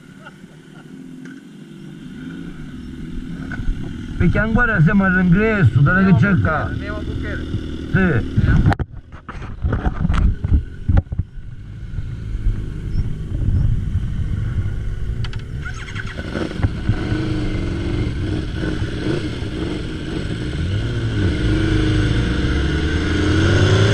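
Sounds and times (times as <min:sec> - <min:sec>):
motorcycle engines accelerating: 0:00.0 - 0:23.9.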